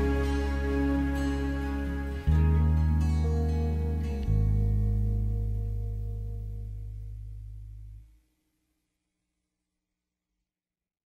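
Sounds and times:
low chord ringing: 0.0 - 8.1.

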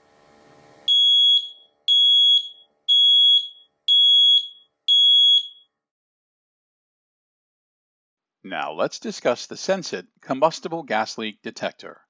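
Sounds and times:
gas monitor beeps: 0.9 - 5.7.

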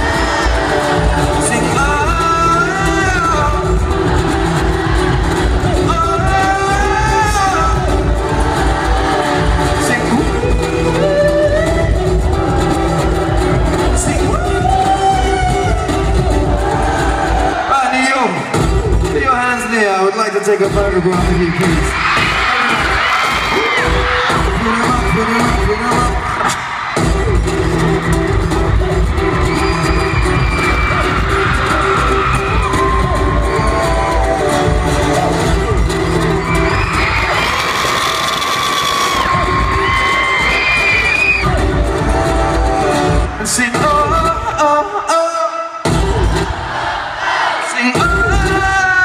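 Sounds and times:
pounding bass beat: 0.0 - 17.6, 18.5 - 19.7, 20.6 - 44.9, 45.8 - 46.8, 48.0 - 49.0
loud live concert music: 0.0 - 49.0.

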